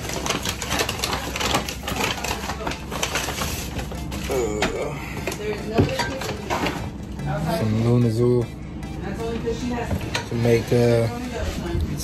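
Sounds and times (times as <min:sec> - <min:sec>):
paper bag crinkling: 0:00.0 - 0:04.5.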